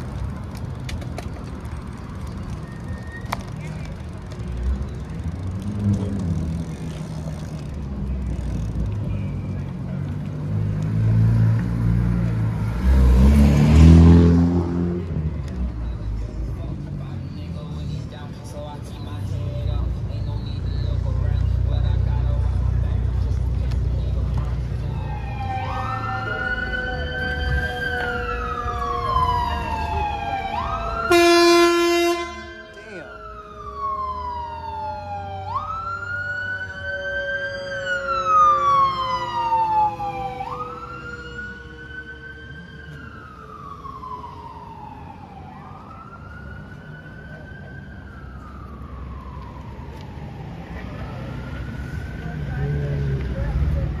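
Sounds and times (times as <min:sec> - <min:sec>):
ambulance siren wailing: 0:23.6 - 0:53.5
loud horn blast: 0:31.1 - 0:32.9.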